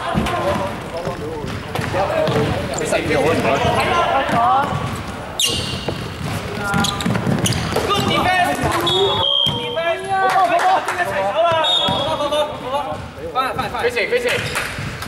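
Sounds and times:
sneakers squeaking: 0:00.0 - 0:10.1, 0:11.4 - 0:15.0
basketball bouncing on hardwood: 0:04.3 - 0:08.8.

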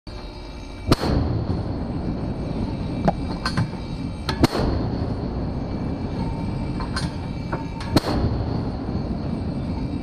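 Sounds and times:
steady background rush: 0:00.1 - 0:10.0.

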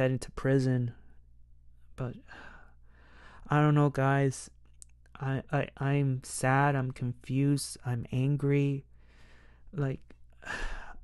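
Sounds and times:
breathy sigh: 0:10.4 - 0:11.0.

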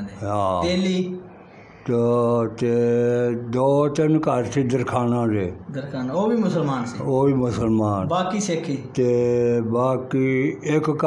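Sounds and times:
man speaking: 0:00.0 - 0:02.6.

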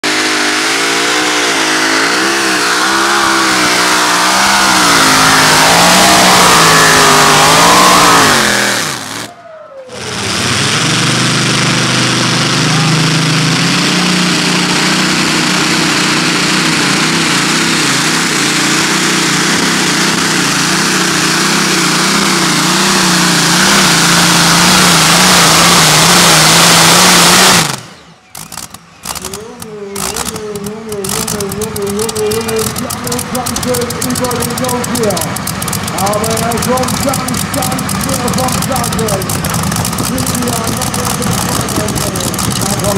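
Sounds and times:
tractor engines running flat out: 0:00.0 - 0:42.9.

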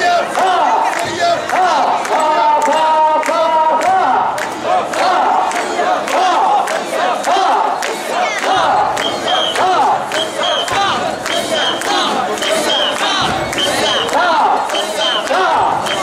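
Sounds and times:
crowd shouting rhythmic chant: 0:00.0 - 0:16.0.

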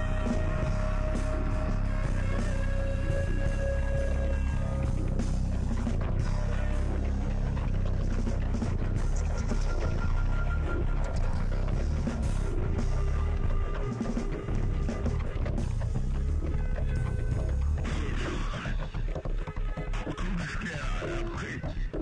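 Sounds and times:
dense bass: 0:00.0 - 0:20.4
rock band playing: 0:00.0 - 0:20.4.

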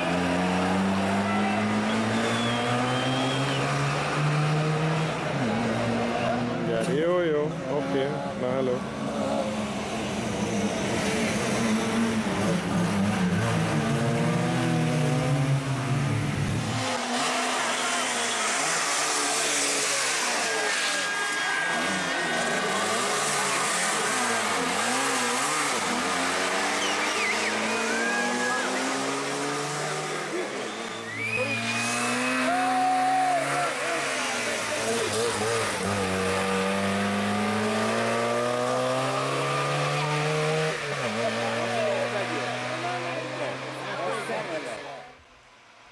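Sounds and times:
rally car engine revving: 0:00.0 - 0:44.9.

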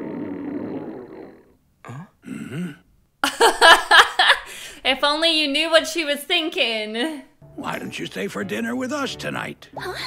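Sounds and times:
cartoon stomach growl: 0:00.0 - 0:02.8.

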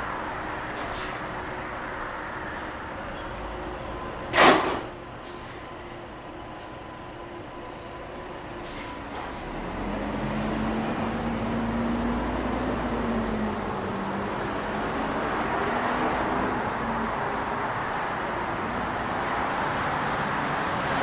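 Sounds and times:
city road traffic: 0:00.0 - 0:21.0
tyres hissing on road: 0:00.7 - 0:01.5, 0:08.5 - 0:12.6
vehicle engine passing: 0:09.4 - 0:16.8.

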